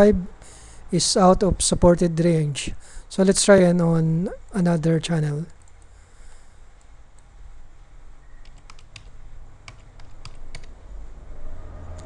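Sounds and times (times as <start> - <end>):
computer keyboard keystrokes: 8.4 - 10.8.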